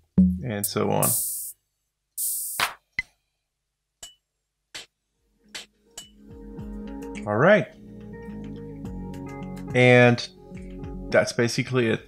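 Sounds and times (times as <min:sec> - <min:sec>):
steady low tone: 0:00.0 - 0:01.1
drum machine percussion hits: 0:00.0 - 0:01.5.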